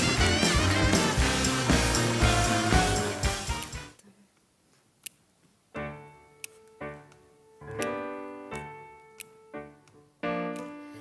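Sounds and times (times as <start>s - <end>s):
band music: 0.0s - 4.0s
grand piano chords: 5.8s - 11.0s.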